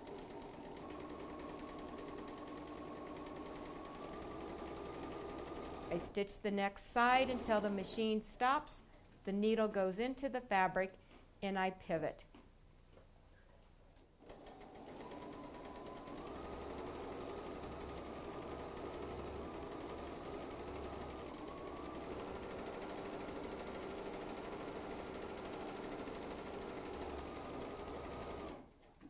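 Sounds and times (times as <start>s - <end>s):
sewing machine stitching: 0.0s - 6.2s, 6.9s - 8.2s, 14.2s - 29.0s.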